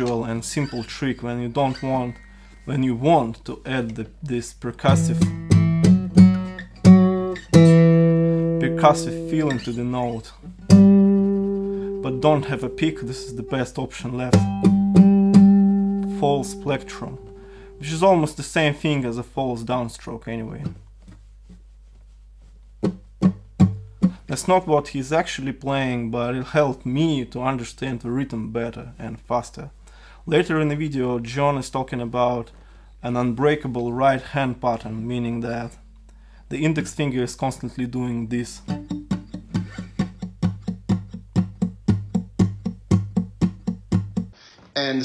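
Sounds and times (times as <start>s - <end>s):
acoustic guitar bass notes: 4.0s - 18.4s, 22.8s - 24.4s, 35.0s - 44.4s.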